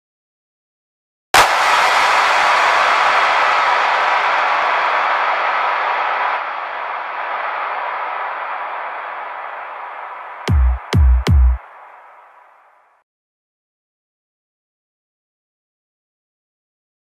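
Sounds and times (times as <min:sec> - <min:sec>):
noisy drum sample: 0:10.4 - 0:11.6.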